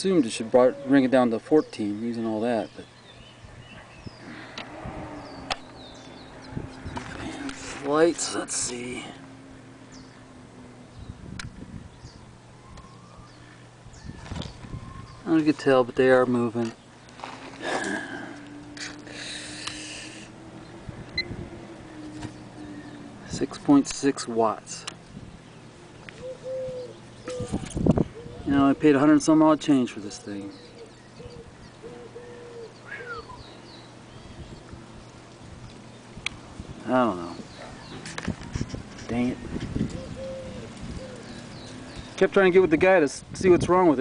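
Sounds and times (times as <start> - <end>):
birds calling low notes: 0.0 - 44.0
high bird chirps: 1.7 - 7.0
faint steady hum: 2.9 - 37.9.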